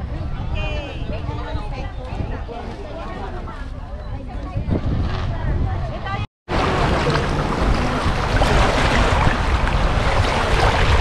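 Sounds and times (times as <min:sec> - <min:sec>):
people talking: 0:00.0 - 0:07.2
steady low rumble: 0:06.5 - 0:11.0.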